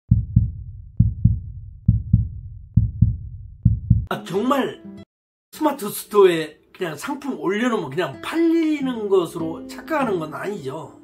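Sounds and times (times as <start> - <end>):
heartbeat thumps: 0.1 - 4.1.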